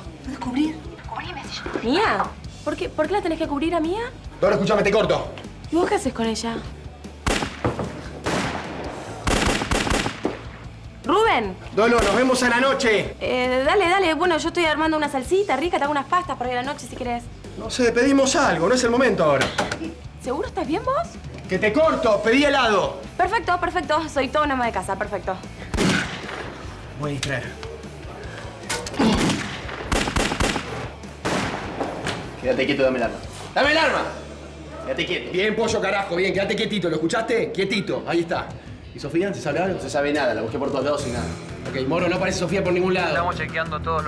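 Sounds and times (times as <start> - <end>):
handgun shots: 7.3 - 10.5, 25.7 - 26.5, 28.7 - 32.2
sharp bangs: 29.0 - 32.3.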